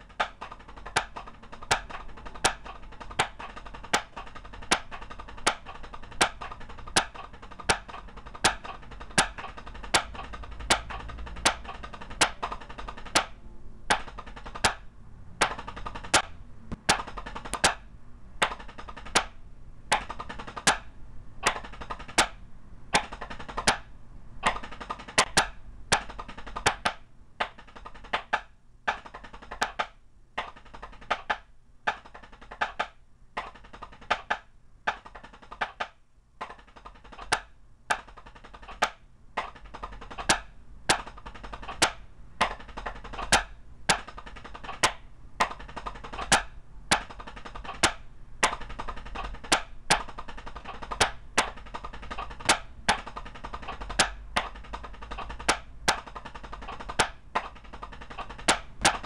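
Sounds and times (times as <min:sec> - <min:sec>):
drumsticks on practice pad: 0:00.0 - 0:59.0.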